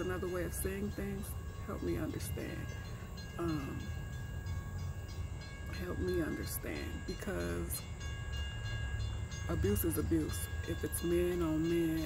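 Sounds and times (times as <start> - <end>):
faint steady tones: 0.0 - 12.0
train rumbling past: 0.0 - 12.0.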